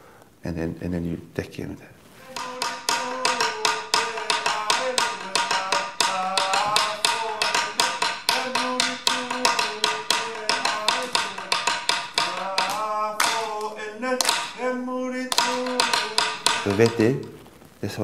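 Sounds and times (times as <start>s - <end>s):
person singing wavering melody: 2.2s - 17.2s
wooden slit drum beaten with sticks: 2.2s - 17.7s.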